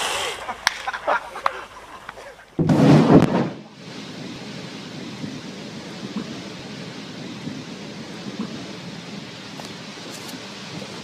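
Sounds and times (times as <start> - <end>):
underwater explosion boom: 2.6 - 8.9
rushing water: 3.6 - 11.0.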